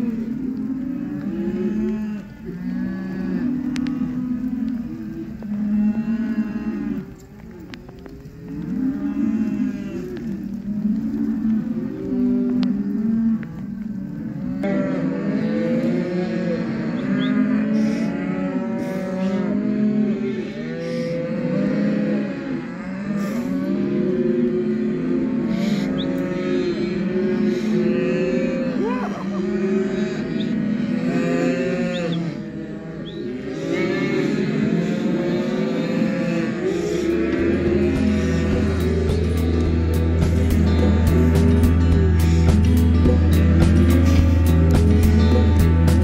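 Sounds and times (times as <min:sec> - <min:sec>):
calves mooing and bawling: 0:00.0 - 0:46.0.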